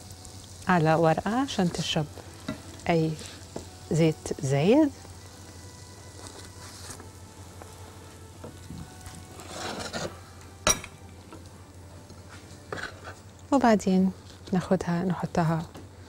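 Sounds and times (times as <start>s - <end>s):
oil sizzling in a frying pan: 0.0s - 16.0s.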